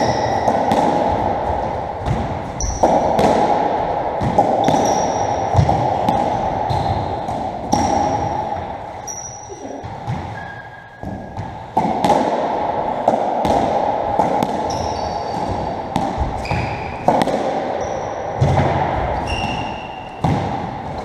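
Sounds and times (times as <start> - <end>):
ball cracking off rackets and walls: 11.0 - 21.0
shoe squeaks on wooden floor: 14.7 - 15.4, 16.4 - 16.9, 19.2 - 20.0.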